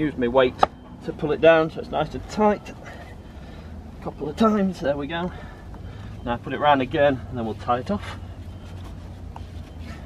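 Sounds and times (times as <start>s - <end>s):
rope rustling and rubbing: 8.0s - 10.0s.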